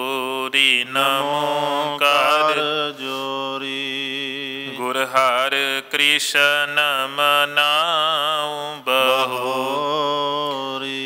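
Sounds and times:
men chanting devotional melody: 0:00.0 - 0:11.0.

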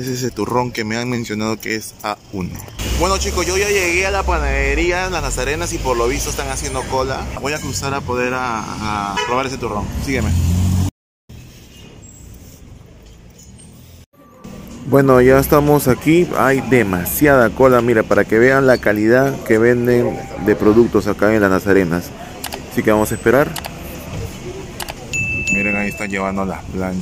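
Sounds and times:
distant traffic: 0:00.0 - 0:27.0
crowd chatter: 0:14.2 - 0:27.0
bell-like ding: 0:25.1 - 0:26.3.

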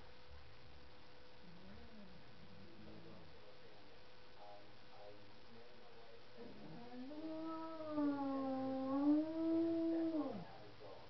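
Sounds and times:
cat yowling: 0:06.6 - 0:10.5.

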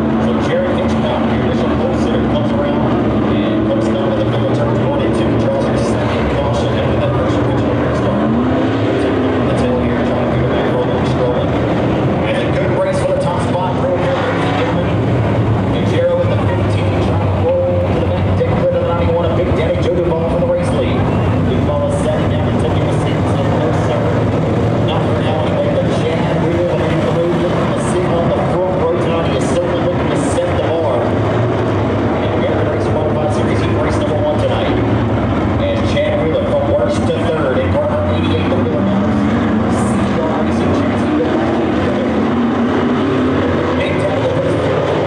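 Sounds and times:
race car engines racing: 0:00.0 - 0:45.0
voices talking: 0:00.0 - 0:45.0.

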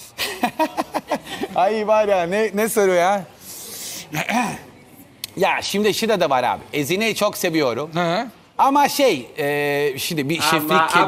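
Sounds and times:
breathy hiss: 0:03.4 - 0:04.2
man's wavering drawn-out voice: 0:10.4 - 0:11.0.

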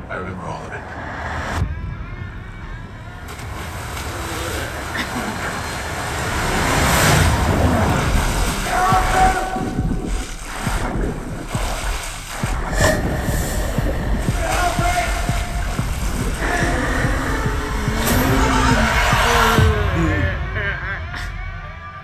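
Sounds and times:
horror trailer score and effects: 0:00.0 - 0:11.6, 0:12.4 - 0:22.0.

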